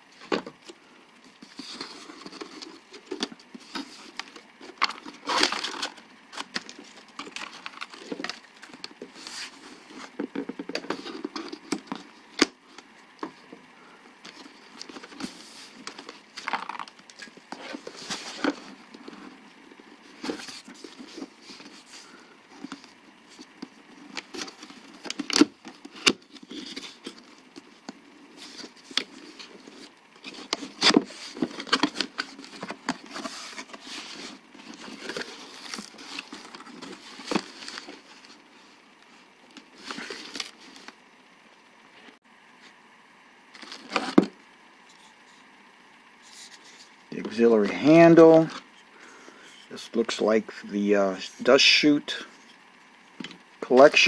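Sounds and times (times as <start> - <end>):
cardboard box rustling and scraping: 1.4 - 12.5, 14.3 - 19.4, 20.0 - 38.8.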